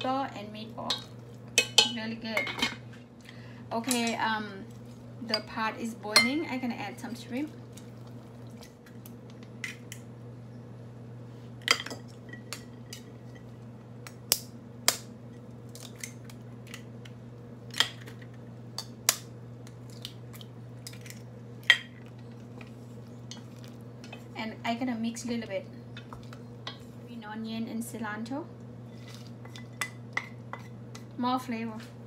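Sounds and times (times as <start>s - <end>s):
steady low hum: 0.0s - 32.0s.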